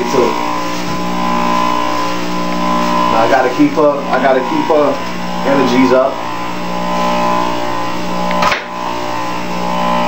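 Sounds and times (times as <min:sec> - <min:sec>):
juicer motor humming: 0:00.0 - 0:10.0.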